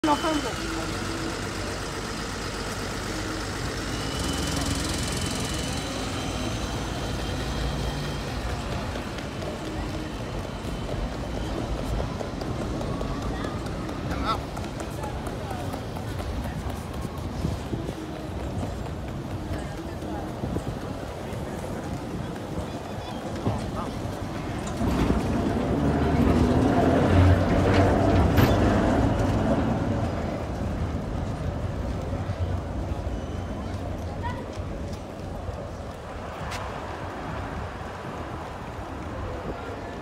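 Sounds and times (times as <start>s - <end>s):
passers-by talking: 0.0s - 40.0s
tram rumbling past on rails: 0.0s - 40.0s.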